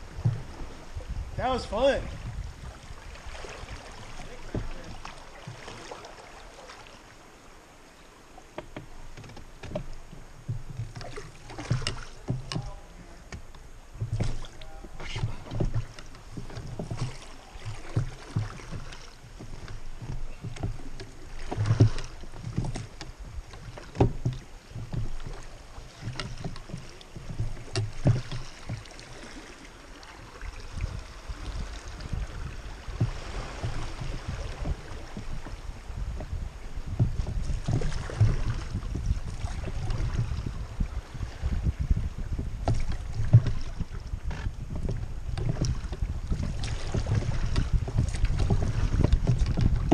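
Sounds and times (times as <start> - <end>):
river water rushing: 0.0 - 35.8
oars splashing water: 0.0 - 49.9
water slapping raft: 0.0 - 49.9.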